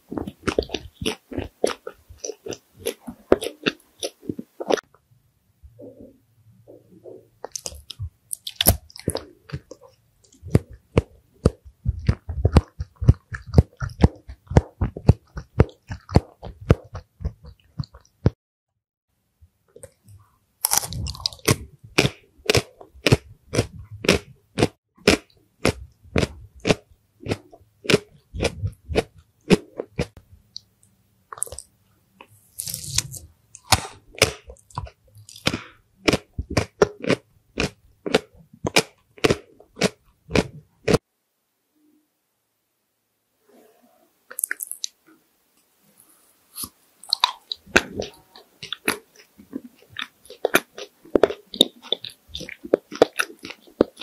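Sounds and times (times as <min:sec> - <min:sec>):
person chewing with crunching clicks: 0:00.1 - 0:04.9, 0:07.4 - 0:18.4, 0:19.7 - 0:41.0, 0:44.3 - 0:45.0, 0:46.6 - 0:54.0.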